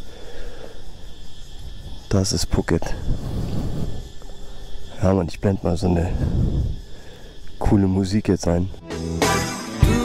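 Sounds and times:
insects chirring: 0.0s - 10.0s
wind buffeting microphone: 1.4s - 4.3s, 5.2s - 7.7s.

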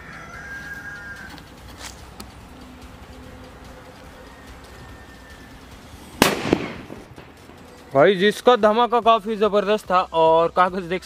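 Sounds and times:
firecracker bang: 6.2s - 7.9s.

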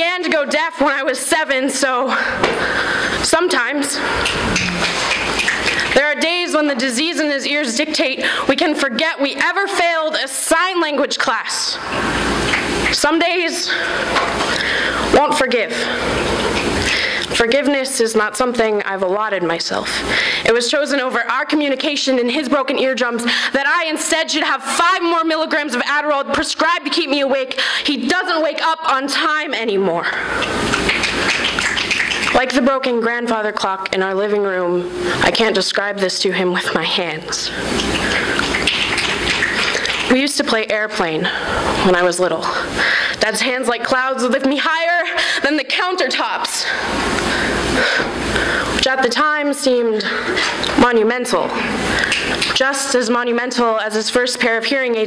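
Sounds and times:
person speaking: 3.2s - 7.1s
audience clapping and snapping: 4.2s - 6.0s, 30.7s - 32.4s.

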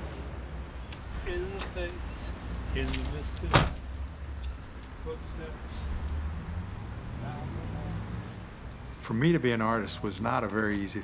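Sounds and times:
car door slamming: 3.4s - 3.8s.

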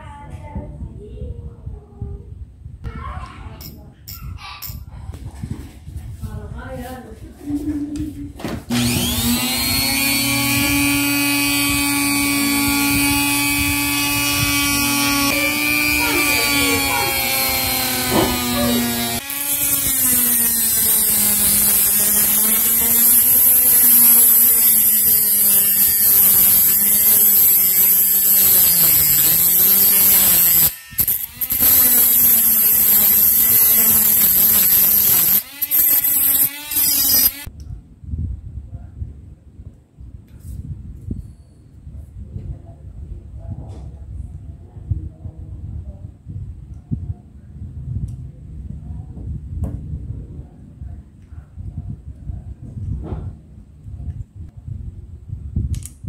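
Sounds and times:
rotary tool cutting metal screw: 8.7s - 37.5s.

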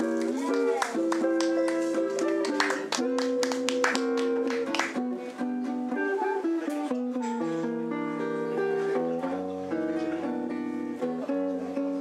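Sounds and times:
electric guitar chords: 0.0s - 12.0s.

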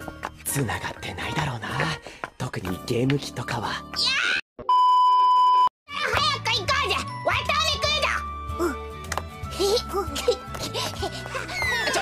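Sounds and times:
background music: 0.0s - 4.3s, 5.9s - 12.0s
child talking: 5.9s - 8.8s
high-pitched cartoon child's voice: 5.9s - 8.8s.

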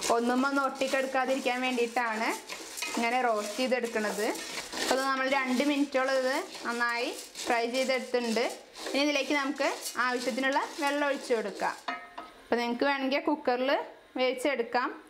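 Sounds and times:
spatula scraping a pan with squeaks: 0.0s - 11.9s.

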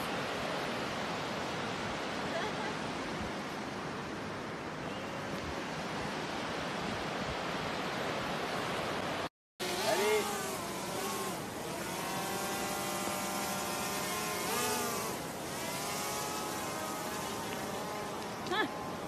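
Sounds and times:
river rushing: 0.0s - 19.0s.

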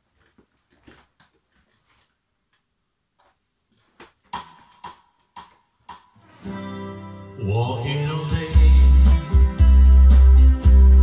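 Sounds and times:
plucked guitar notes: 6.4s - 11.0s.

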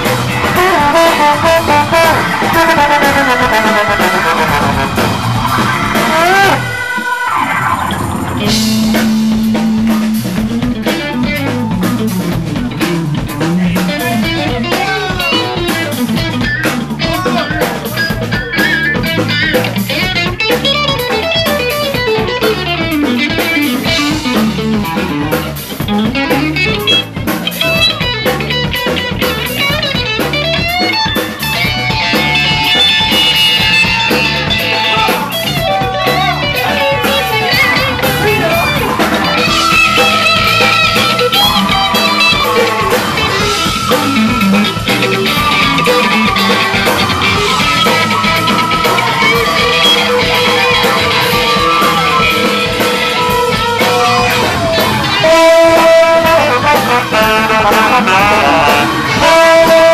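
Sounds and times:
live rock band playing: 0.0s - 59.9s.

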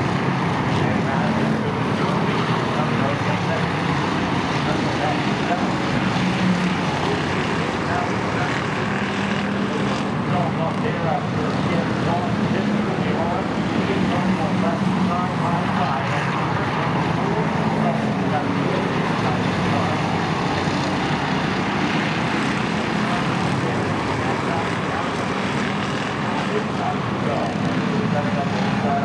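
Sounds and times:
race car engines droning: 0.0s - 29.0s.

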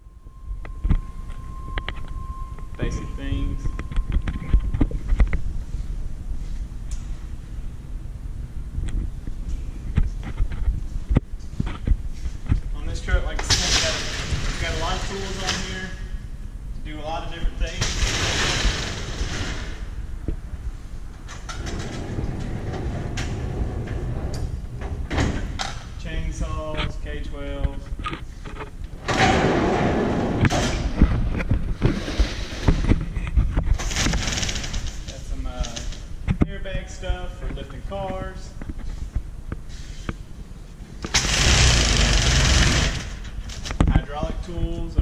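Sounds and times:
roll-up shutter doors sliding open: 13.4s - 15.7s, 21.3s - 25.2s, 41.1s - 43.7s.

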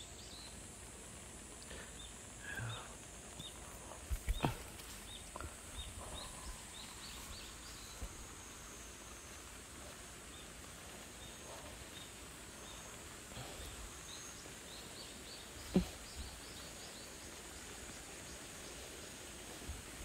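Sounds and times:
small bird chirping: 1.6s - 19.0s.

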